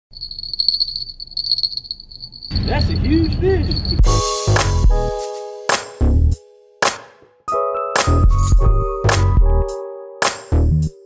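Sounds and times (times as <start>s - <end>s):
fishing rod bells jingling: 0.1s - 4.8s.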